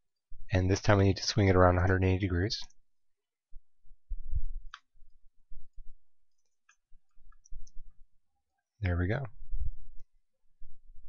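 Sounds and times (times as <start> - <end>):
man speaking: 0.5 - 2.7, 8.8 - 9.4.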